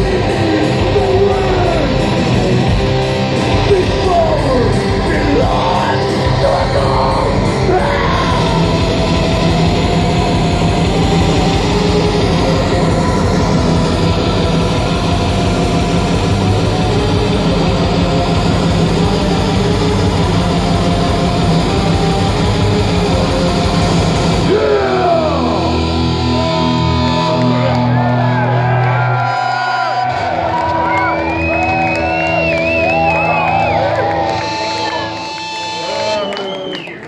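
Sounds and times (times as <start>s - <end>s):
crowd whooping: 0.0s - 19.6s, 24.4s - 37.0s
very fast programmed drums: 0.0s - 27.2s
black metal band playing live: 0.0s - 36.8s
distorted guitars: 0.0s - 37.0s.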